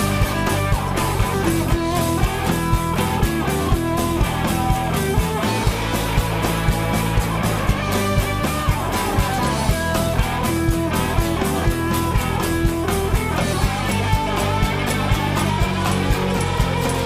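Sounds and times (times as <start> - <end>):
bass guitar: 0.0 - 17.0
drums keeping a steady beat: 0.0 - 17.0
lead guitar held notes: 0.0 - 17.0
strummed guitars: 0.0 - 17.0.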